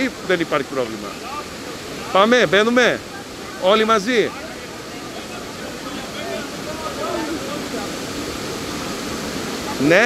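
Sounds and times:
waterfall and river rushing: 0:00.0 - 0:10.0.

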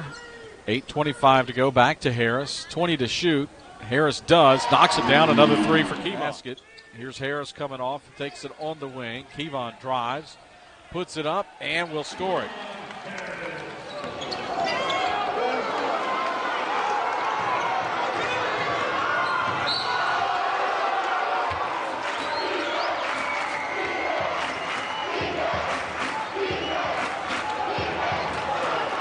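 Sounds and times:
crowd voices in gym: 0:02.4 - 0:29.0.

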